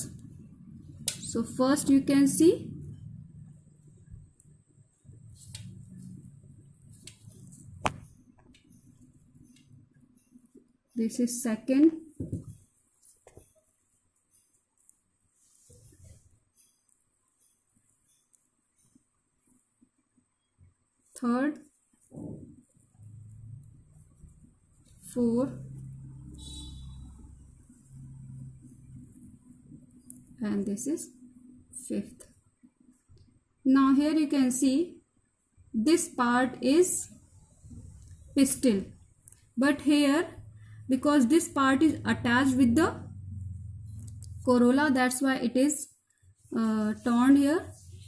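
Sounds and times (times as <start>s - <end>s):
faint low hum: 0.0s - 48.0s
petals being pulled by hand: 21.1s - 30.4s.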